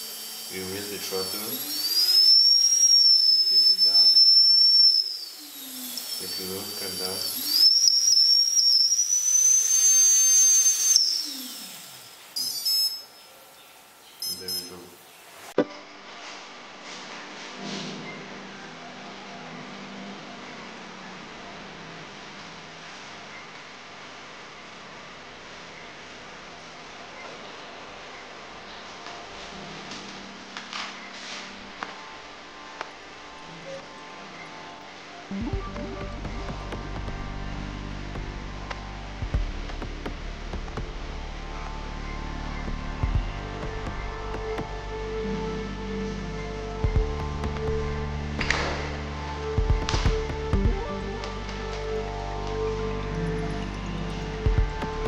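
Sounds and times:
electric motor whine: 0:00.0 - 0:13.4, 0:33.4 - 0:55.0
steady hiss: 0:00.0 - 0:15.6
high beeping: 0:12.4 - 0:13.3, 0:14.2 - 0:14.9, 0:35.3 - 0:37.0
low hum: 0:31.5 - 0:55.0.

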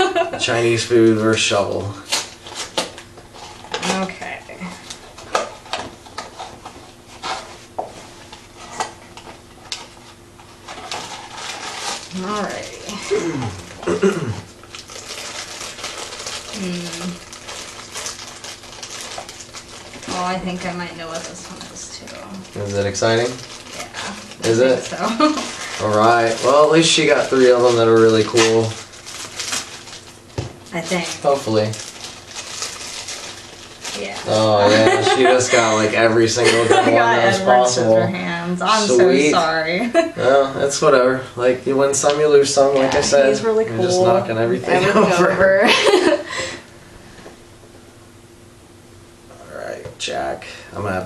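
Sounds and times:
packaging crinkling: 0:08.3 - 0:13.0, 0:14.5 - 0:36.2.

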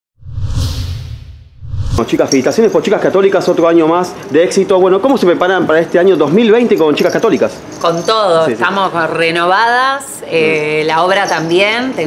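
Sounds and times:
low rumble: 0:00.2 - 0:02.2
whoosh sound effects: 0:00.2 - 0:02.4.

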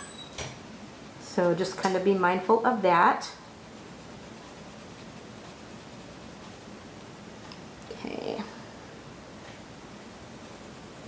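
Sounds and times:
colored pencil scratching on paper: 0:03.5 - 0:06.8, 0:09.6 - 0:11.0.

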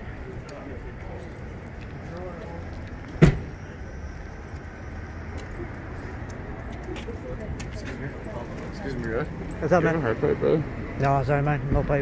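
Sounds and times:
faint voices: 0:00.0 - 0:12.0
low traffic hum: 0:00.0 - 0:12.0
sharp thump: 0:03.2 - 0:03.5.

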